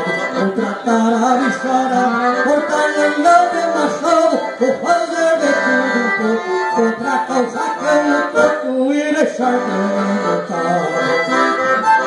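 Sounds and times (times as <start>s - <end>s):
accordion melody: 0.0s - 12.0s
person singing: 0.0s - 12.0s.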